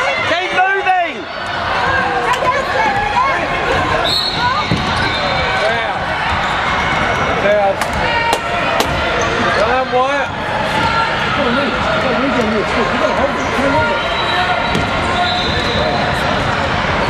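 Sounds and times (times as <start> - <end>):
people talking and shouting: 0.0 - 17.0
referee whistle: 4.0 - 5.6, 13.8 - 16.2
basketball bouncing on court: 4.3 - 5.2.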